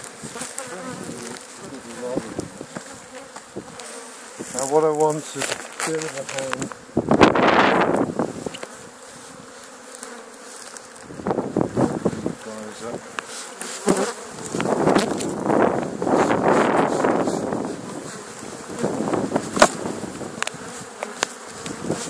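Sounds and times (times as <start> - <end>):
bee swarm buzzing: 0.0 - 22.0.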